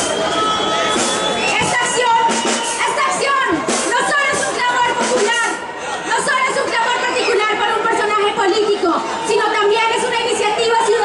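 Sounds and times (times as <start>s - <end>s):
woman speaking over loudspeakers: 1.5s - 11.0s.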